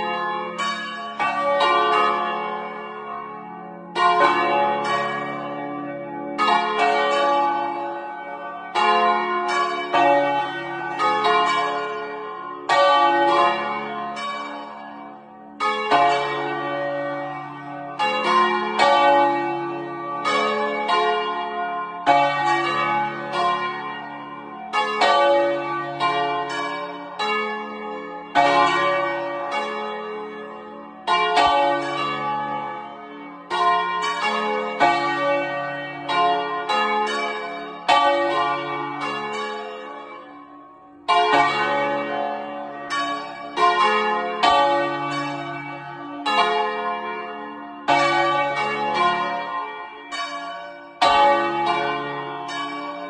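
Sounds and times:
church bells clanging: 0.0s - 53.0s.

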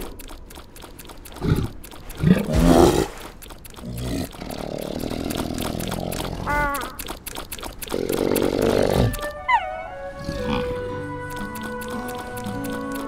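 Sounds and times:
cartoon bear growling: 1.3s - 7.1s, 7.9s - 11.0s.

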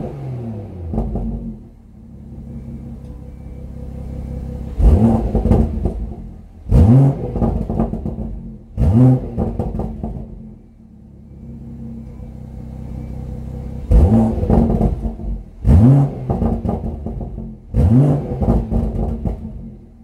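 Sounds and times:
car engine idling: 0.0s - 20.0s
car engine revving: 0.0s - 20.0s.

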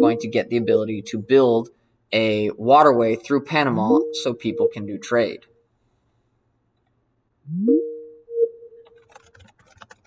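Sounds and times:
held electronic tone: 0.0s - 1.3s, 3.7s - 5.2s, 7.5s - 9.0s
computer keyboard typing: 8.8s - 10.0s.

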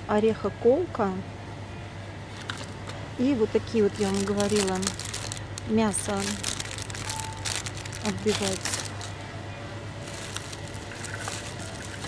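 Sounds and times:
plastic packaging crinkling: 2.4s - 2.9s, 3.7s - 9.2s, 10.0s - 12.0s.

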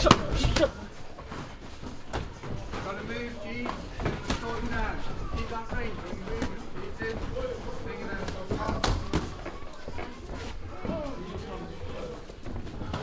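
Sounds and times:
people talking and calling: 0.0s - 13.0s.

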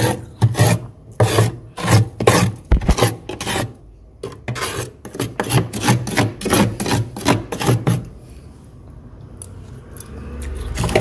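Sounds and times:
metal spoon scraping frost: 0.0s - 8.5s.

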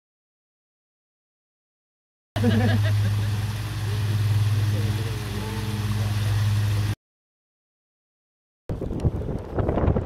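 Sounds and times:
steady low hum: 2.4s - 7.0s
water splashing down rocks: 2.4s - 7.0s.

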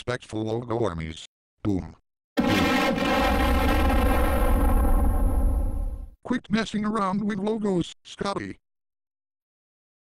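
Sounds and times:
cartoon explosion: 2.4s - 6.1s.

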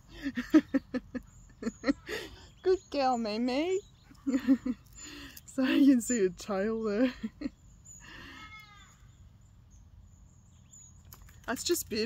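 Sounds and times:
person laughing: 0.1s - 2.4s, 4.2s - 4.9s.

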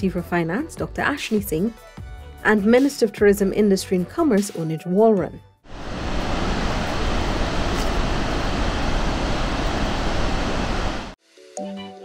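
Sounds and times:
music: 0.0s - 5.6s, 11.2s - 12.0s
waterfall roaring: 5.7s - 11.2s.

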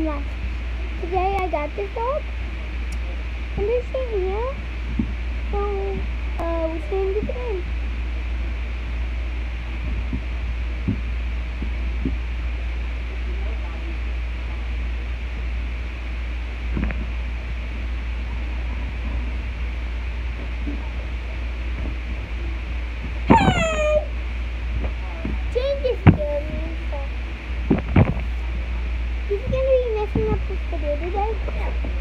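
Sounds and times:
steady low hum: 0.0s - 32.0s
short whine falling in pitch: 22.1s - 25.2s.

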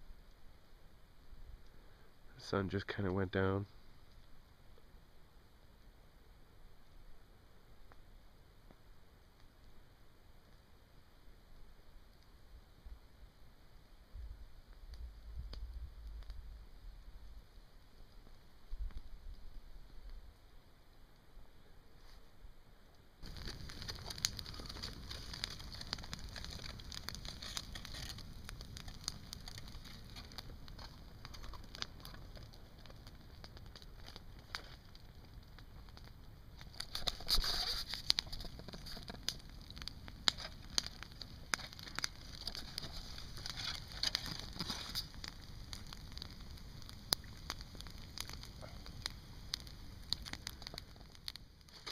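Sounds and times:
campfire crackling and popping: 0.0s - 51.9s.

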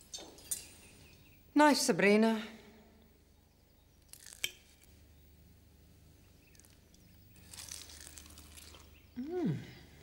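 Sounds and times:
faint chewing with crackles: 6.4s - 9.3s.

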